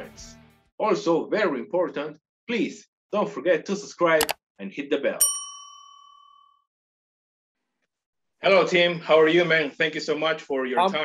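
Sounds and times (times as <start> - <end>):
click: 4.2 - 4.4
bright bell ding: 5.2 - 6.6.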